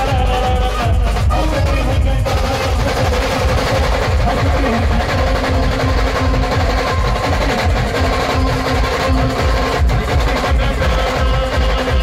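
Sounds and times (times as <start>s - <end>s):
hand drums: 0.0s - 12.0s
heavy bass drum hits: 0.0s - 12.0s
live band music over speakers: 0.0s - 12.0s.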